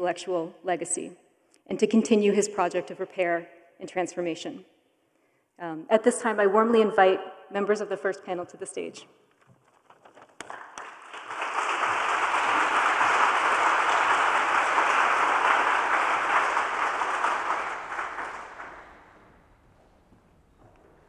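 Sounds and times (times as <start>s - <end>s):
audience applauding: 10.4s - 19.8s.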